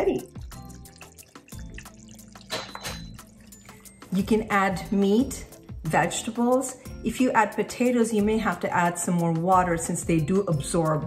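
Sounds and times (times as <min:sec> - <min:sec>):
thick sauce bubbling in a pan: 0:00.4 - 0:02.5.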